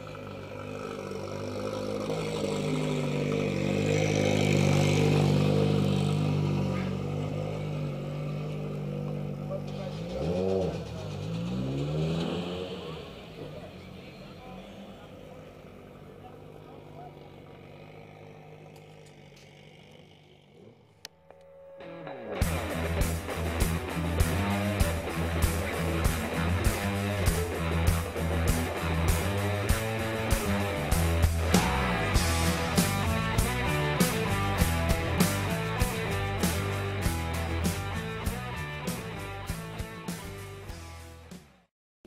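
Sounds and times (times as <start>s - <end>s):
car engine revving: 0.0s - 41.2s.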